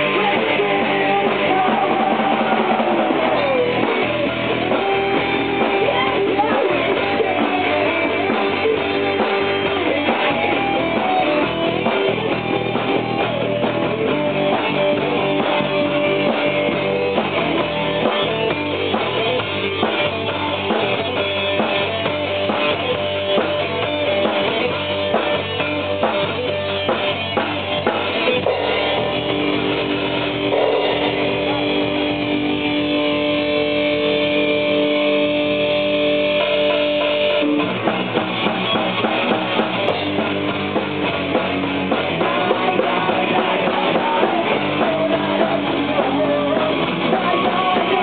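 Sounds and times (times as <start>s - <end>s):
drum kit: 0.0s - 48.0s
electric guitar: 0.0s - 48.0s.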